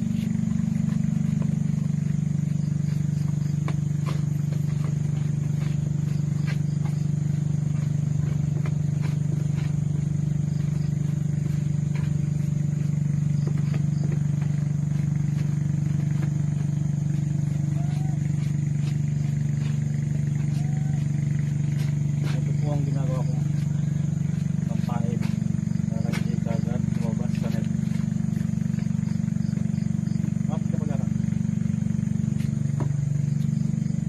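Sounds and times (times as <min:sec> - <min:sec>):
low machine hum: 0:00.0 - 0:34.0.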